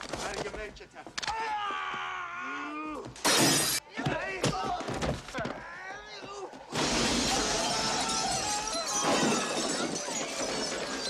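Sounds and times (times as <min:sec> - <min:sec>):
glass window shattering: 0:03.2 - 0:03.8, 0:06.8 - 0:11.0
falling glass tinkling: 0:07.0 - 0:11.0.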